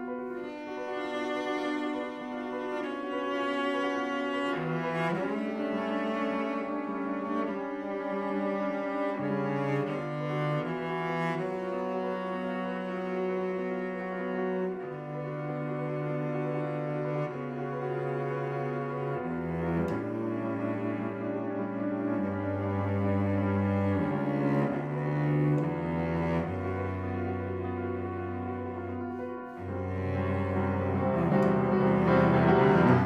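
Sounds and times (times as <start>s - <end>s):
cello bowed notes: 0.0s - 33.0s.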